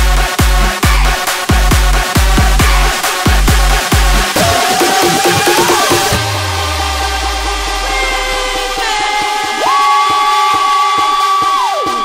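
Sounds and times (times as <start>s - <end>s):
deep bass: 0.0s - 10.2s
held synth chords: 1.6s - 9.7s.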